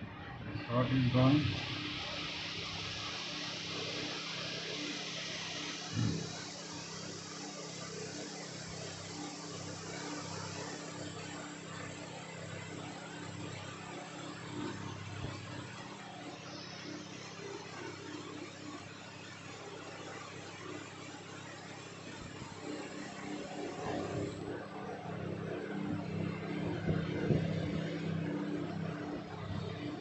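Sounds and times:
hot air station hissing: 0.6 - 19.2.

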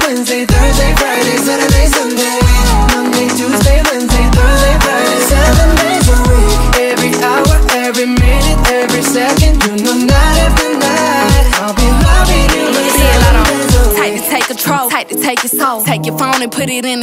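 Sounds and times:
man singing: 0.0 - 16.5
deep sliding bass notes: 2.4 - 2.9, 4.1 - 6.8, 11.8 - 13.9.

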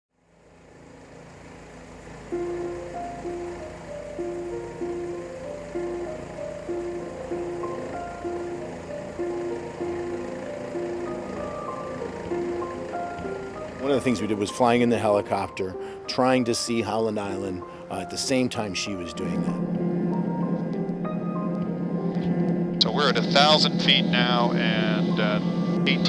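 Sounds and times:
instrumental background music: 2.2 - 26.0
low steady rumble: 19.0 - 26.0.

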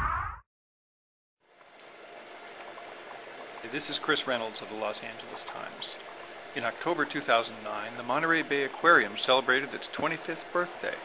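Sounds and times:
running water rushing: 1.8 - 11.0.

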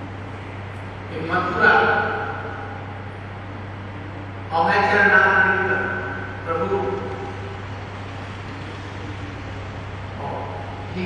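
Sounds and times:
low electrical hum and hiss: 0.0 - 11.0.

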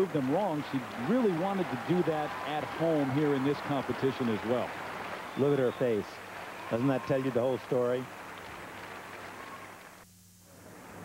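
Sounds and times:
faint crowd applause: 0.0 - 10.0, 10.6 - 11.0.

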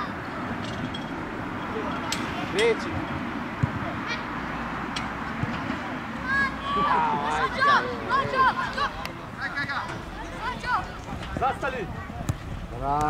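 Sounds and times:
outdoor background noise: 0.0 - 13.0
children shouting: 6.2 - 9.0.

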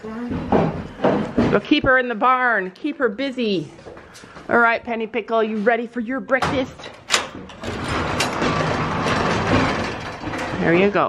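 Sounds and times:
metal sliding door rumbling: 6.8 - 11.0.

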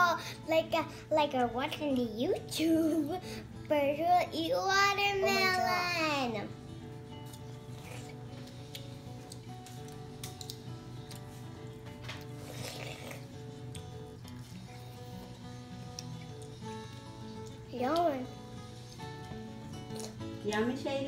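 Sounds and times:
soft background music: 0.0 - 21.0
children chewing watermelon: 7.2 - 20.4.

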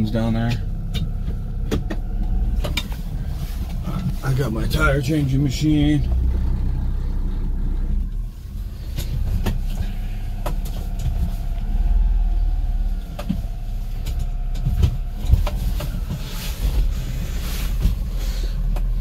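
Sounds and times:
truck engine low rumble: 0.0 - 19.0
sharp clicks and knocks: 0.4 - 4.2, 8.9 - 11.6, 13.0 - 16.2.

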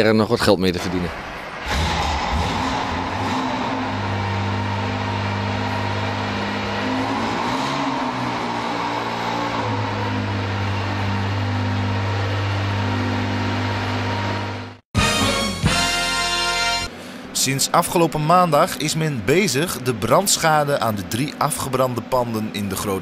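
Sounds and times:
car engine idling: 0.8 - 14.8.

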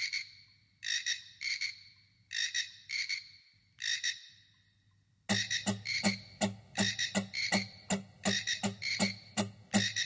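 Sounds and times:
vocal beatbox percussion: 5.3 - 10.0.

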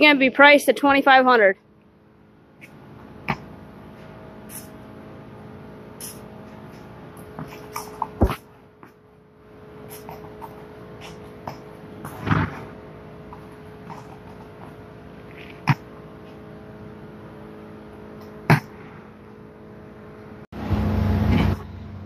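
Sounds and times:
background hum: 0.0 - 22.0.

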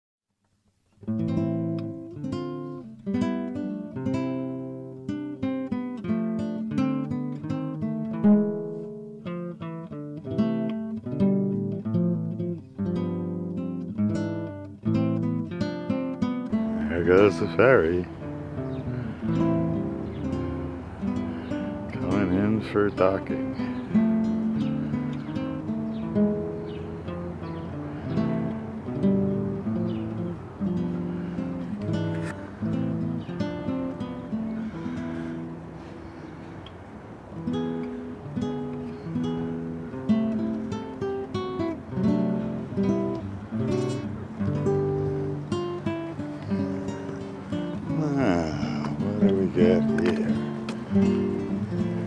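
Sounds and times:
acoustic guitar music: 0.7 - 52.0.

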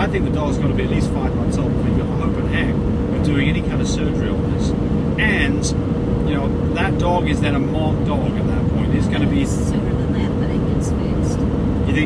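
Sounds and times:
faint steady hum: 0.0 - 12.0
road and engine rumble: 0.0 - 12.0.

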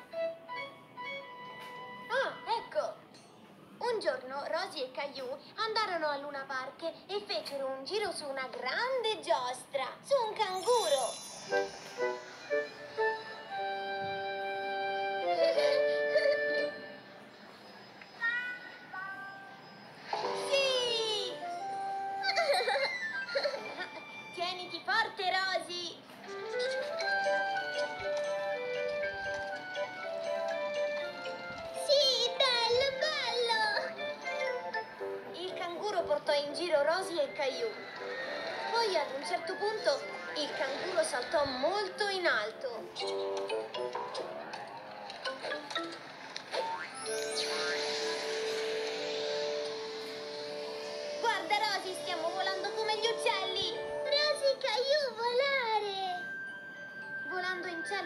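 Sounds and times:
cartoon background music: 0.0 - 2.9, 10.5 - 17.1, 20.0 - 24.6, 26.2 - 58.0
carousel-style tune: 0.0 - 3.4, 10.6 - 18.4, 19.1 - 24.6, 26.2 - 35.7, 42.8 - 44.4, 46.6 - 54.5, 55.2 - 58.0
children giggling and squealing: 22.1 - 24.2.

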